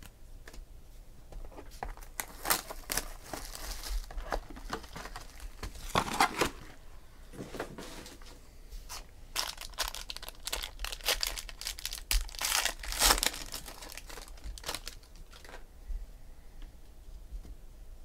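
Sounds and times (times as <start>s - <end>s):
plastic wrapper crinkling and tearing: 1.8s - 6.7s, 8.9s - 15.6s.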